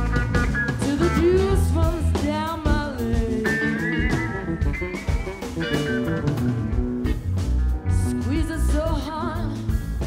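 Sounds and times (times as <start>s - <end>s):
bass guitar: 0.0s - 10.0s
drums: 0.0s - 10.0s
electric guitars: 0.0s - 10.0s
woman singing lead: 0.7s - 5.2s, 7.8s - 10.0s.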